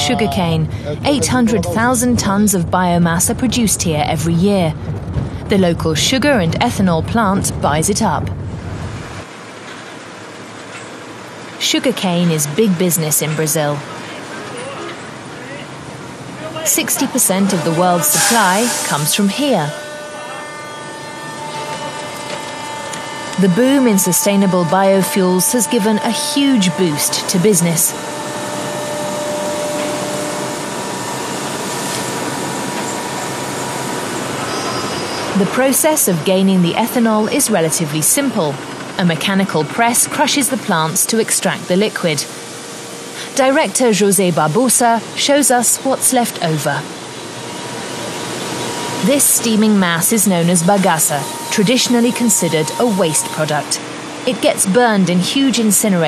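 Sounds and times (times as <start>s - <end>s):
constant high hum: 0.0s - 56.0s
machinery mechanical drone: 0.0s - 56.0s.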